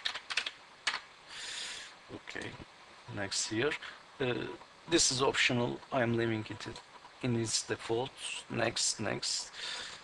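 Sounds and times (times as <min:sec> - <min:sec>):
computer keyboard keystrokes: 0:00.0 - 0:01.0.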